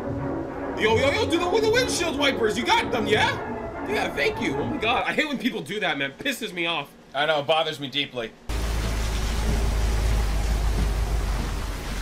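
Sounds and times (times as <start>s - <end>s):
heavy rain falling: 8.5s - 12.0s.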